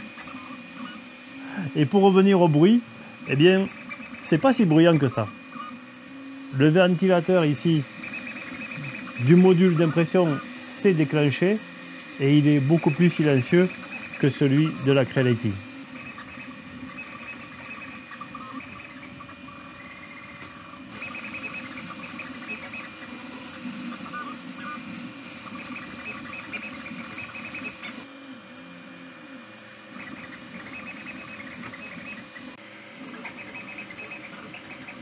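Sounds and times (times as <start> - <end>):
cooling fan humming: 0.0 - 35.0
printer motors whining: 0.0 - 35.0.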